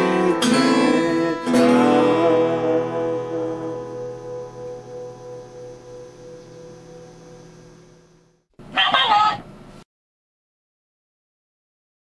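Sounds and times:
acoustic guitar chord ringing: 0.0 - 8.4.

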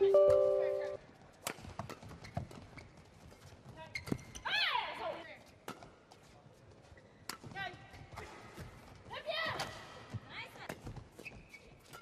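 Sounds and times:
shoe squeaks: 1.9 - 4.8, 11.1 - 12.0.

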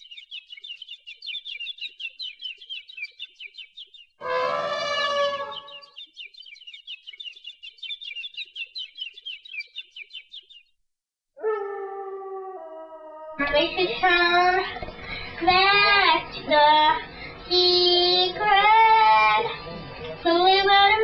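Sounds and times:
small bird chirping rapidly: 0.0 - 4.3, 4.9 - 10.7
held pitched bird call: 0.0 - 10.7.

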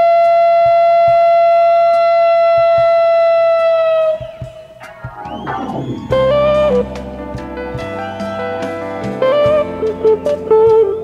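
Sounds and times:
soft low drum thumps: 3.8 - 9.9.

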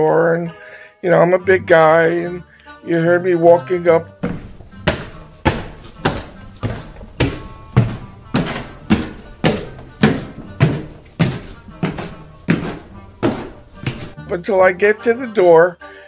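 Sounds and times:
heavy footsteps on stairs: 4.2 - 14.3.

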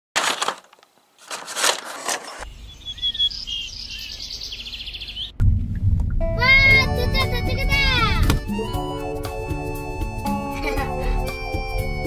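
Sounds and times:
small birds chirping: 2.3 - 5.4
faint low rumble: 5.3 - 7.1
loud low rumble: 5.3 - 8.3.

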